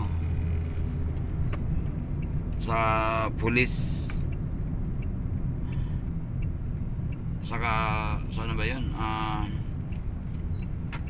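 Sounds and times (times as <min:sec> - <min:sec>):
car cabin engine and road rumble: 0:00.0 - 0:11.0.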